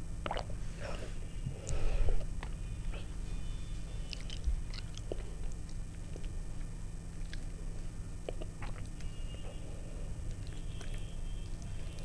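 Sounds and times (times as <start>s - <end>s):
close chewing with mouth clicks: 3.9s - 9.6s, 10.2s - 12.0s.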